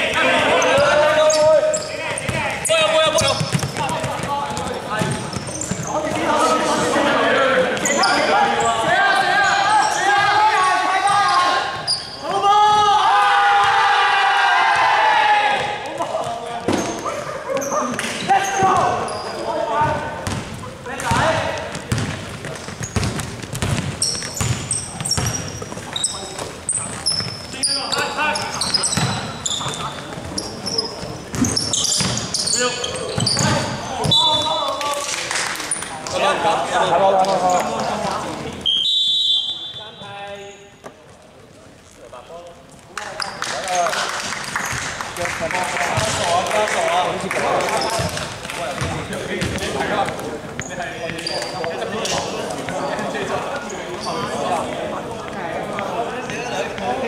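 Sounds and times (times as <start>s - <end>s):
basketball bouncing on hardwood: 3.2s - 5.4s, 21.1s - 25.7s
players shouting in a hall: 5.9s - 16.0s.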